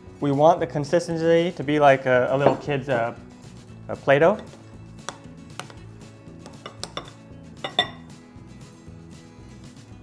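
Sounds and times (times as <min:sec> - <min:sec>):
metal spoon clinking glass bowl: 0:06.4 - 0:08.1.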